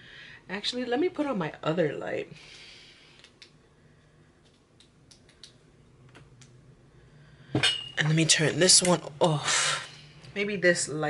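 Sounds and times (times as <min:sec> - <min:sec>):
faint small clicks and taps: 0:04.4 - 0:06.6.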